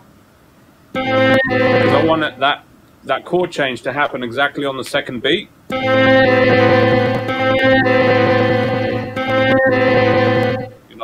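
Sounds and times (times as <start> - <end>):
looped sustained chords: 1.0 - 2.5, 5.7 - 10.8.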